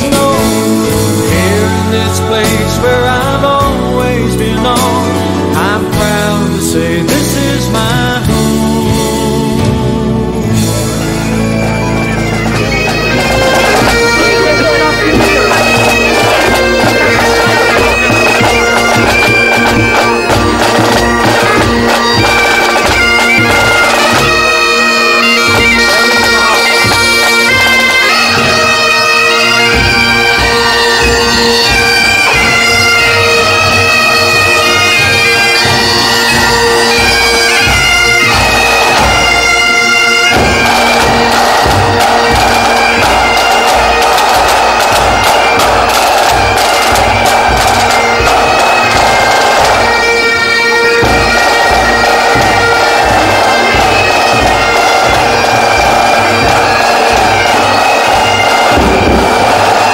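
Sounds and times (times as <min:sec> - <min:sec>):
bagpipes playing marching tune: 0:00.0 - 0:59.9
snare drums: 0:10.6 - 0:59.9
bass drum: 0:51.0 - 0:59.9.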